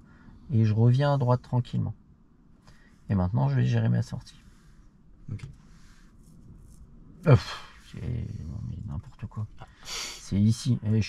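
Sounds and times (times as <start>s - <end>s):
low hum inside a car: 0.0s - 11.0s.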